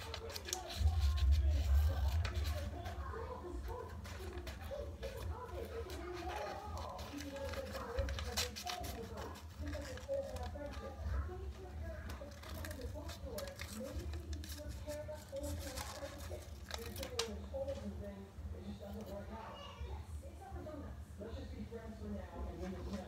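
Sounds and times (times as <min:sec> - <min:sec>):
paper rustling: 0:00.0 - 0:18.0, 0:22.4 - 0:23.0
faint voice: 0:00.0 - 0:23.0.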